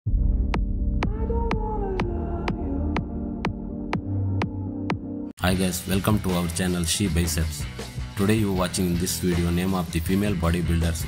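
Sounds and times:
low droning bass: 0.1s - 5.3s.

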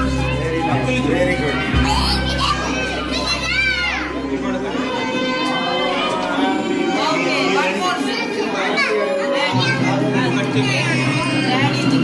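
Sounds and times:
background music: 0.0s - 12.0s
children calling and chattering: 0.0s - 12.0s.

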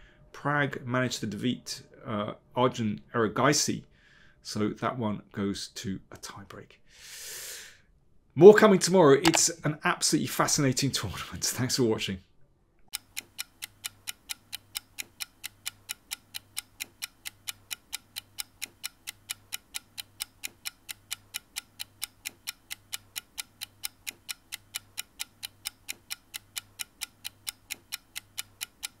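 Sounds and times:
steady clock-like ticking: 12.9s - 29.0s.

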